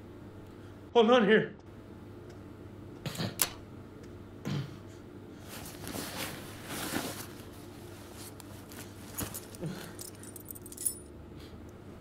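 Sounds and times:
keys jangling: 0:09.1 - 0:11.1.

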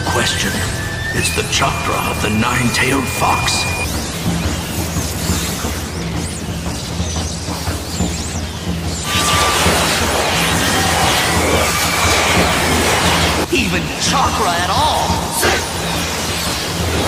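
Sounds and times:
dense rushing rumble: 0:00.0 - 0:04.7
steady low drone: 0:00.0 - 0:17.0.

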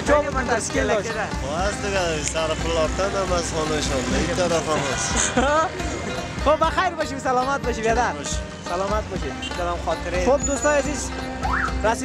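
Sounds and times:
man talking: 0:00.0 - 0:05.7
street traffic rumble: 0:00.0 - 0:12.0.

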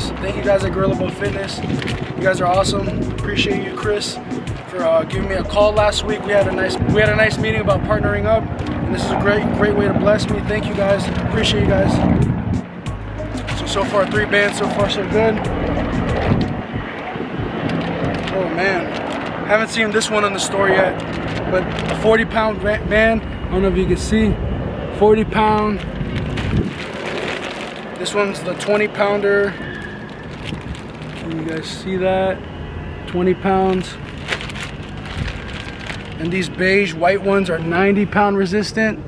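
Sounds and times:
plastic bags rustling: 0:00.0 - 0:02.8, 0:17.6 - 0:22.5, 0:25.7 - 0:31.8, 0:33.6 - 0:37.0
steady background rumble: 0:00.0 - 0:39.0.

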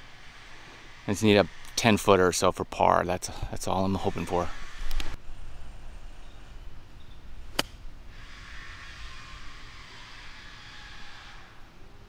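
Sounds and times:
golf club striking ball: 0:07.5 - 0:07.8.

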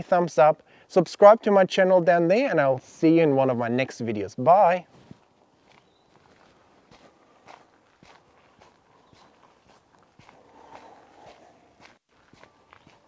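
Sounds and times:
footsteps on dirt track: 0:04.8 - 0:13.0.

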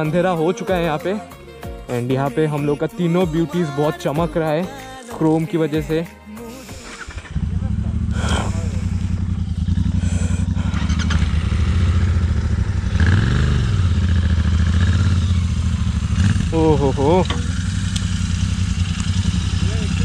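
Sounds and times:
motorcycle engine starting and idling: 0:06.5 - 0:20.0.

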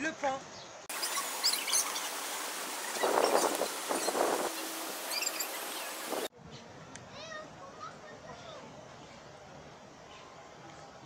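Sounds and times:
steady outdoor hiss: 0:00.0 - 0:11.0
small birds chirping: 0:00.5 - 0:06.3.

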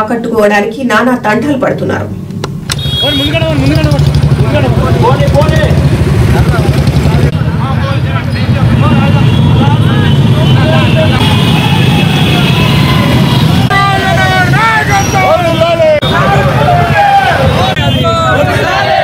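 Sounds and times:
motorcycle engines rumbling: 0:02.2 - 0:19.0
voices shouting: 0:08.4 - 0:19.0.

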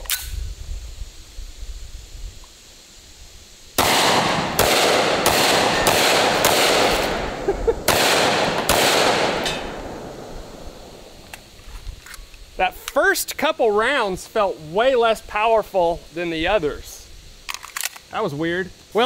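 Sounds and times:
pistol shots with echo: 0:03.8 - 0:11.0.

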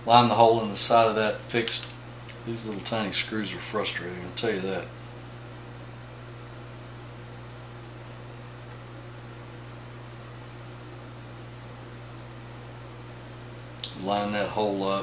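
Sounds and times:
low electrical hum with hiss: 0:00.0 - 0:15.0.

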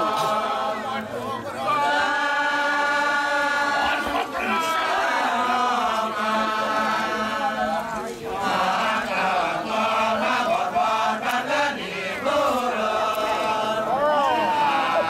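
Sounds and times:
male voices chanting together: 0:00.0 - 0:15.0.

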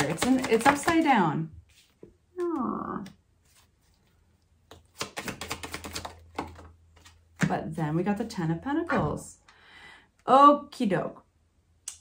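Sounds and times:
cards being shuffled: 0:00.0 - 0:07.4.

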